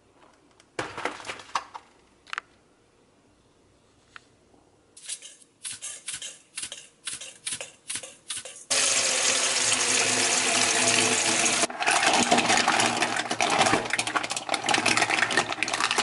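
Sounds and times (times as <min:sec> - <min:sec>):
tap water running into bowl: 0:08.7 - 0:16.0.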